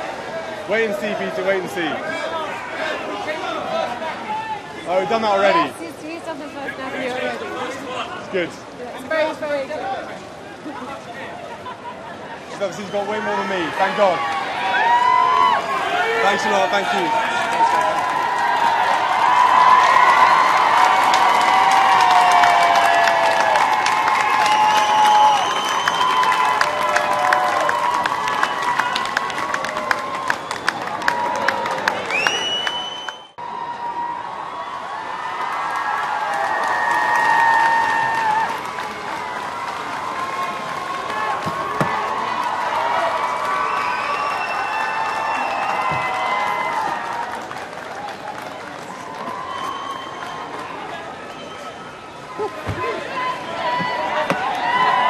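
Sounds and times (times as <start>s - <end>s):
crowd cheering: 0.0s - 8.5s, 9.1s - 55.0s
crowd applauding: 12.6s - 55.0s
clapping: 16.8s - 33.3s, 35.4s - 51.4s.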